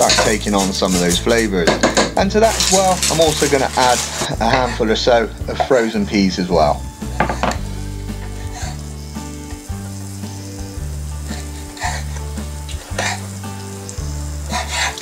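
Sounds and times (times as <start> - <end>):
knife strokes on chopping board: 0.0 - 1.4, 14.5 - 15.0
food sizzling in a saucepan: 0.0 - 15.0.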